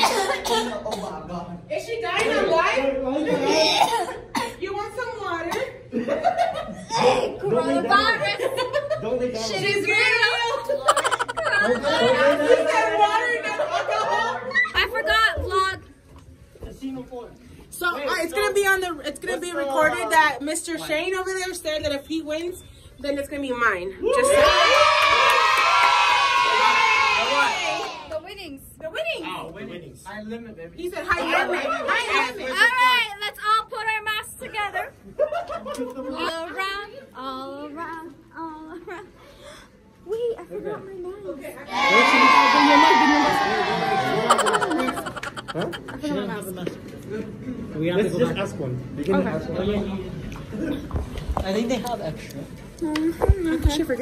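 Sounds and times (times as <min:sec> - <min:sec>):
people chattering: 0:00.0 - 0:15.8, 0:30.8 - 0:54.0
people laughing: 0:05.9 - 0:09.4, 0:10.2 - 0:14.9, 0:35.0 - 0:36.4, 0:43.1 - 0:46.4
people talking: 0:43.1 - 0:46.8.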